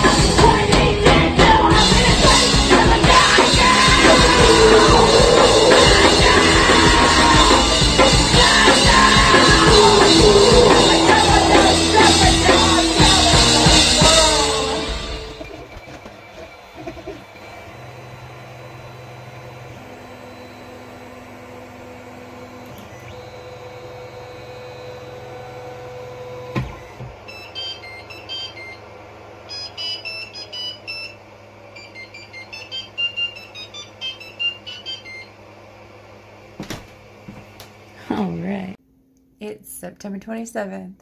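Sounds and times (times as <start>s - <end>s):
stepper motors whining: 0.0s - 36.3s
short high-pitched motor chirps: 27.3s - 28.8s, 29.5s - 31.2s, 31.8s - 35.3s.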